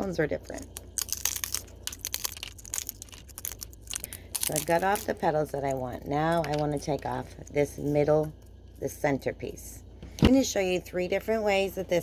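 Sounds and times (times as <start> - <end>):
pine cone scales cracking: 0.6 - 5.3.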